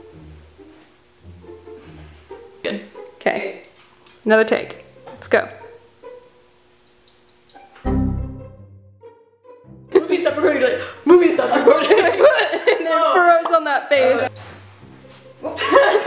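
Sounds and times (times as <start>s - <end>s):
bowed strings and bass music: 0.0s - 3.5s, 4.5s - 6.4s, 7.6s - 11.8s, 14.0s - 16.0s.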